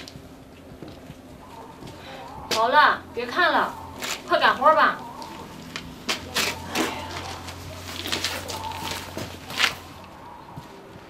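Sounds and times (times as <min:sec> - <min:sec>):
pigeon cooing: 0:01.3 - 0:11.0.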